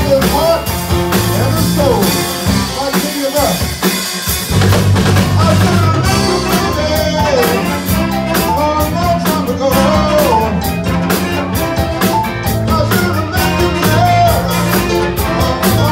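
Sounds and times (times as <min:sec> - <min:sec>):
person singing: 0:00.0 - 0:03.6, 0:05.2 - 0:15.9
drum kit steady beat: 0:00.0 - 0:15.9
soul band playing: 0:00.0 - 0:15.9
horn section with saxophone: 0:01.4 - 0:15.9.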